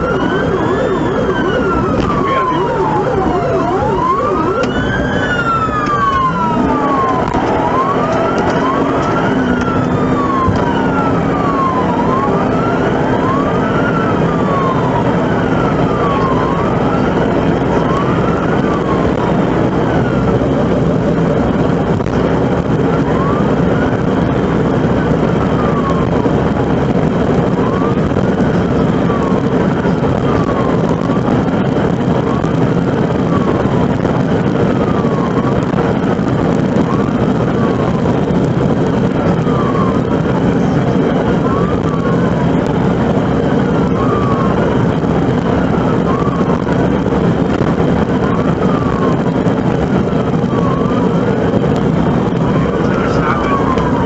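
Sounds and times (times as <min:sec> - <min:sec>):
engine and road noise: 0:00.0 - 0:54.0
police siren wailing: 0:00.0 - 0:54.0.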